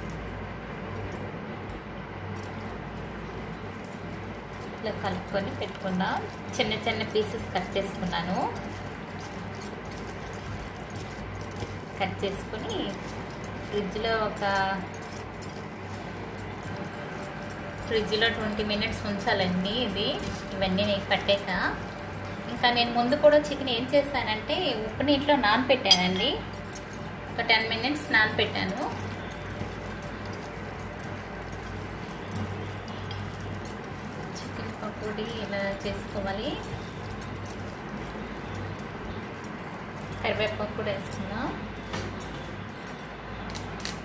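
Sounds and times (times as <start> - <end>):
steady low hum: 0.0 - 44.0
light metallic jangling: 2.3 - 23.7, 25.9 - 44.0
wet mixing of chicken: 2.6 - 24.6, 26.6 - 40.2.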